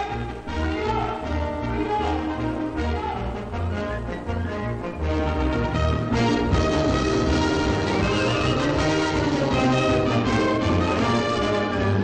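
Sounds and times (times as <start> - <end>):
orchestra playing held chords: 0.0 - 12.0.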